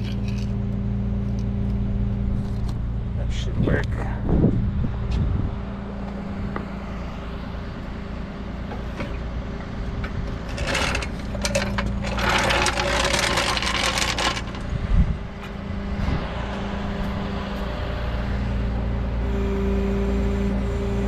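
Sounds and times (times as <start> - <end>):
truck engine running: 0.0 - 21.0.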